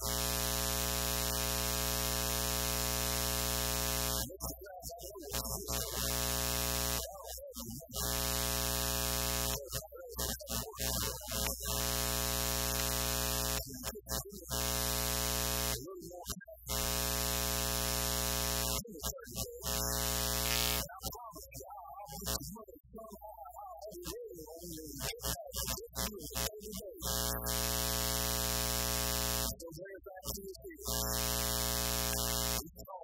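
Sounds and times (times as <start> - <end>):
loud electrical buzz: 0.0 - 4.4, 5.3 - 7.2, 8.0 - 15.8, 16.7 - 21.0, 25.0 - 29.6, 30.9 - 32.8.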